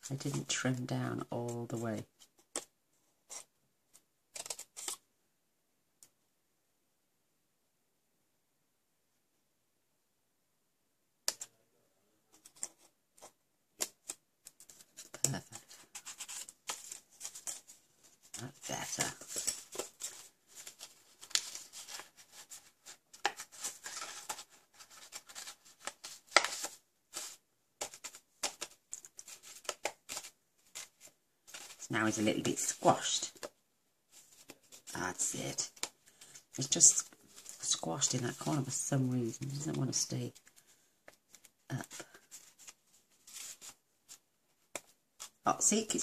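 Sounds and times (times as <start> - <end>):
card box crackling and rustling: 13.9 - 45.4.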